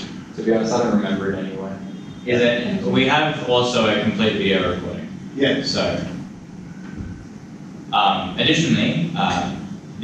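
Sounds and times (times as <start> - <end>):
person speaking: 0.0 - 6.3, 7.9 - 10.0
low room hum: 0.0 - 10.0.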